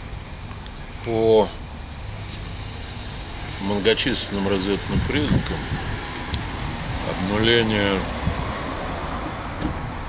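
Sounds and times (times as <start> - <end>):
even hiss: 0.0 - 10.0
low rumbling: 0.0 - 10.0.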